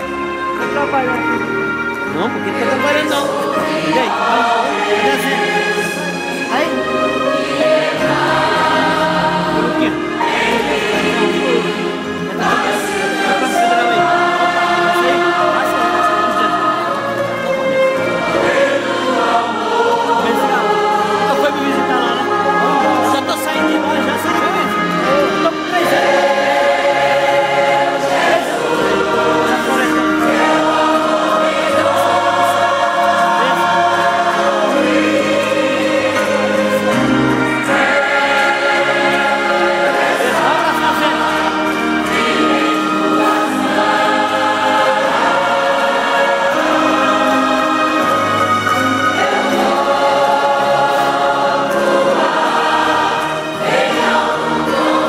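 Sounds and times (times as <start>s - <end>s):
choir singing a hymn: 0.0s - 55.0s.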